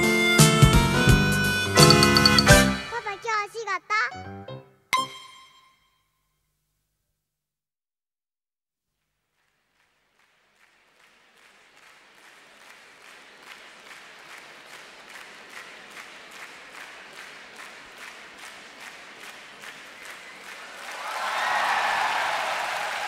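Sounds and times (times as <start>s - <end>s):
crowd applause: 9.6s - 23.0s.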